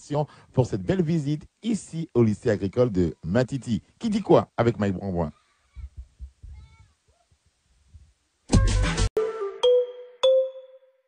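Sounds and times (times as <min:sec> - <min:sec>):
faint animal call: 0:05.3 - 0:07.4.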